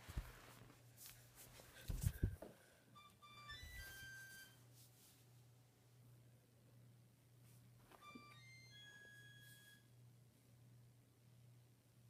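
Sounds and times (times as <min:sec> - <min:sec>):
electronic beeping tune: 0:03.0 - 0:04.6.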